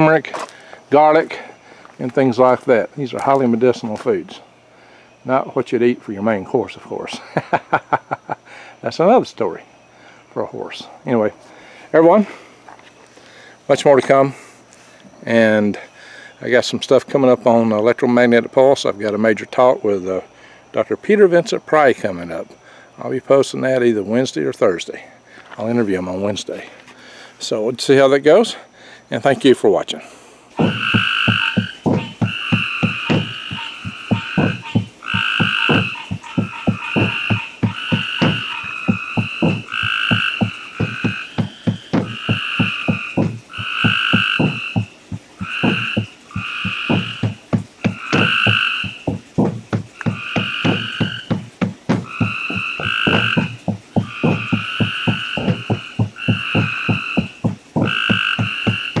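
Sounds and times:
frogs croaking: 0.0s - 59.0s
higher frog calls: 30.6s - 59.0s.

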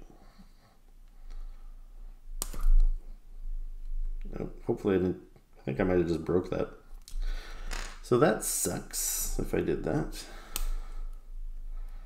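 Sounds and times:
hard plastic snapping: 2.4s - 2.9s.

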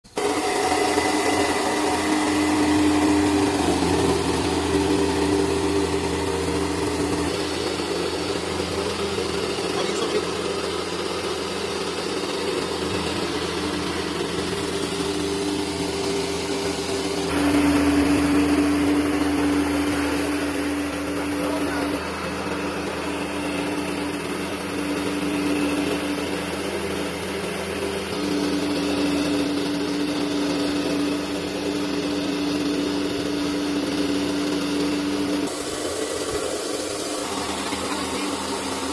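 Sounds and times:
rice mill motor humming: 0.0s - 38.9s.

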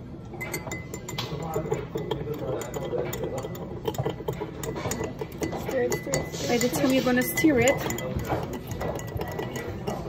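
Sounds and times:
metal spoon clinking in glass: 0.2s - 10.0s.

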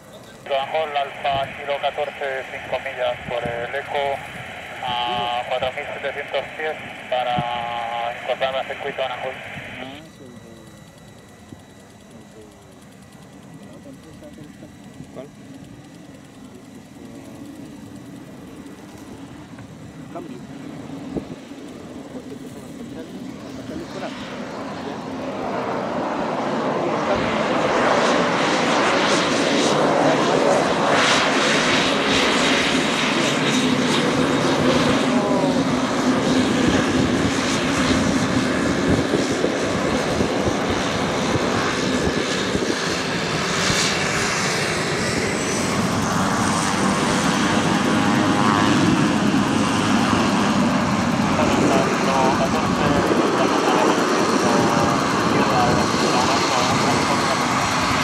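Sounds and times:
turboprop engine and propeller: 0.0s - 58.0s.

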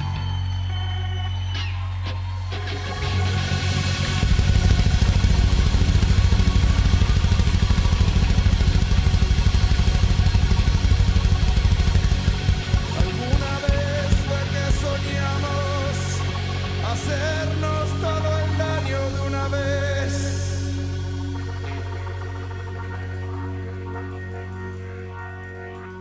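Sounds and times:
rock band playing live: 0.0s - 26.0s
held low bass note: 2.2s - 26.0s.

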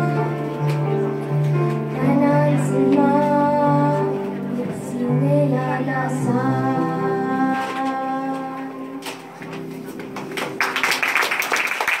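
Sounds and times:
audience applauding: 10.0s - 12.0s.

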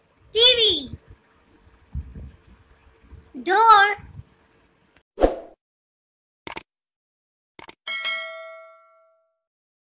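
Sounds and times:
notification bell ding: 7.9s - 9.3s.

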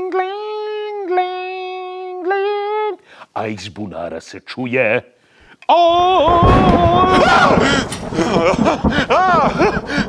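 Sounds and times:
man crying out and yelling: 5.7s - 10.0s.

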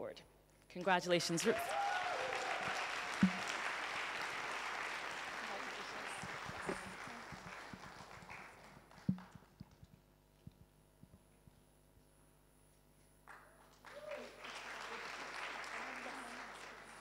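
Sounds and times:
audience applauding: 1.2s - 9.4s, 13.3s - 17.0s.

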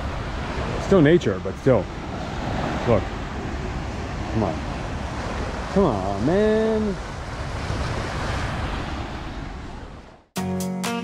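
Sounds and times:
waves washing onto a shore: 0.0s - 10.2s
wind buffeting the microphone: 0.0s - 10.3s.

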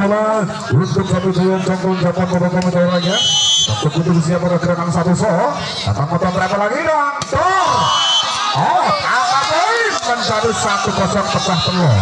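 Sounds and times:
voices calling out: 0.4s - 6.7s, 7.3s - 12.0s.

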